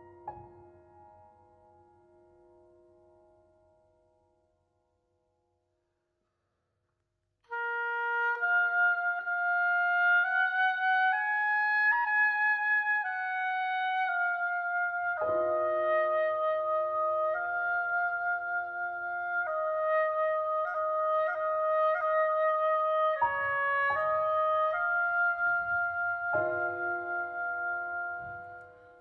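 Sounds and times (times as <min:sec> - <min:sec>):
oboe playing folk melody: 0:07.5 - 0:29.0.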